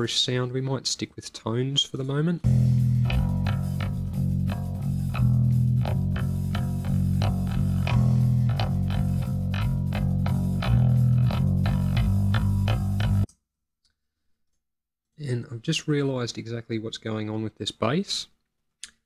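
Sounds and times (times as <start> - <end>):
bass guitar plucked notes: 2.4 - 13.3.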